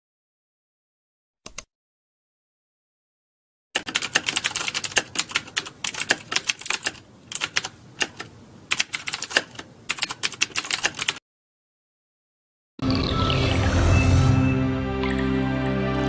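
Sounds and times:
keyboard typing clicks: 1.5s - 1.7s, 3.8s - 11.2s.

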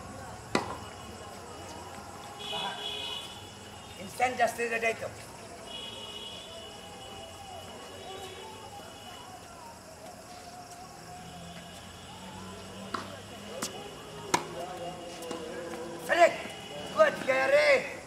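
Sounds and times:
tennis ball struck by rackets: 0.5s - 0.8s, 12.9s - 13.7s, 14.3s - 14.6s
murmured voices: 4.9s - 18.0s
man shouting: 16.1s - 18.0s.

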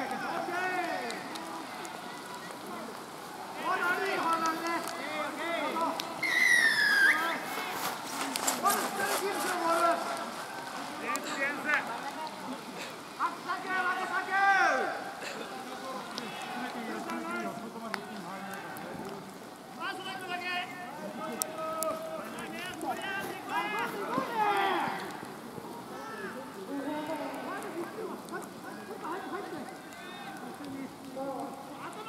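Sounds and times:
crowd shouting and calling out: 0.0s - 32.0s.

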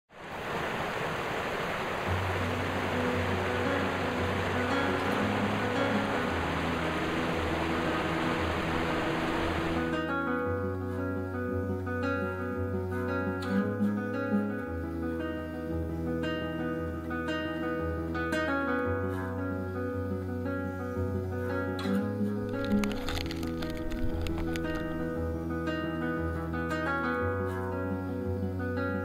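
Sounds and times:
water rushing down cascade: 0.1s - 10.0s
acoustic guitar music: 2.1s - 29.0s.

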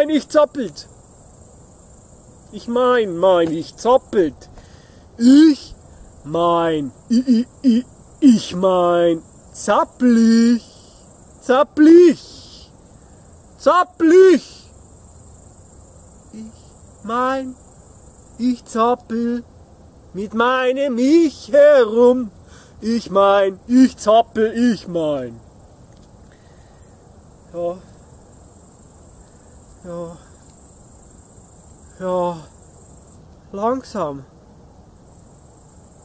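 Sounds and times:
man speaking: 0.0s - 0.9s, 2.5s - 4.5s, 5.2s - 12.8s, 13.6s - 14.7s, 16.4s - 17.6s, 18.4s - 19.5s, 20.2s - 25.4s, 27.5s - 27.9s, 29.8s - 30.3s, 32.0s - 32.5s, 33.5s - 34.3s
insects chirring: 0.0s - 36.0s.

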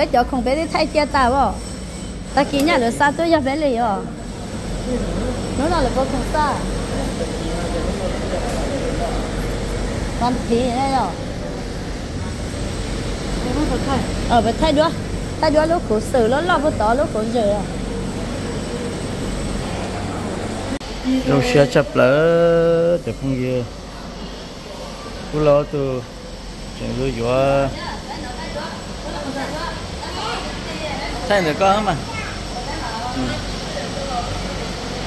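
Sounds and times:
shop background hiss and hum: 0.0s - 35.0s.

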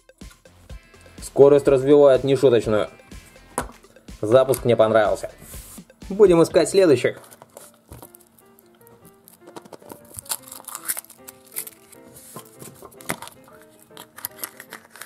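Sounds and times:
quiet background music: 0.0s - 15.0s
foil wrapper crinkling and tearing: 7.2s - 15.0s
plastic capsule snapping open: 8.7s - 11.8s, 12.9s - 15.0s.

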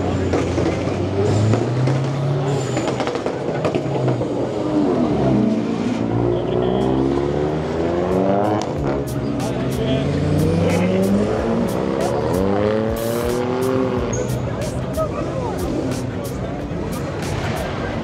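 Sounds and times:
cars accelerating past: 0.0s - 18.0s.

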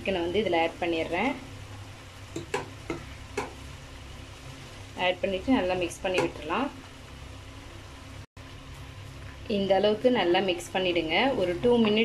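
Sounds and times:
masala sizzling in a pan: 0.0s - 12.0s.

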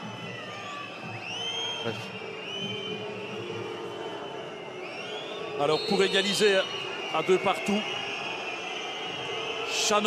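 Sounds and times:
whistles from the stands: 0.0s - 10.0s.

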